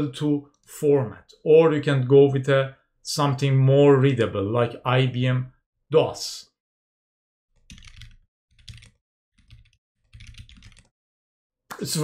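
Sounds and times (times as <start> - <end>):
computer keyboard typing: 7.6 - 11.0.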